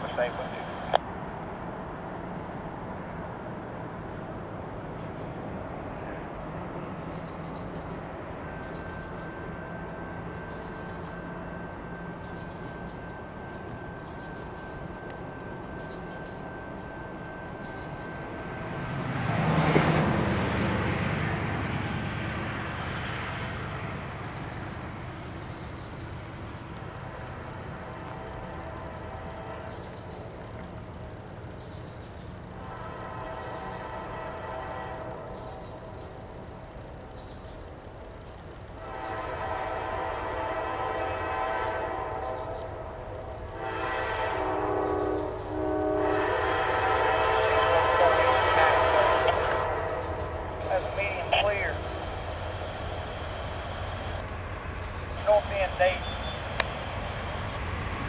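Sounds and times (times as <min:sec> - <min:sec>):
low rumble of train: 0:00.0 - 0:58.0
train air horn blasts: 0:27.4 - 0:30.0, 0:32.5 - 0:35.4, 0:38.8 - 0:51.8.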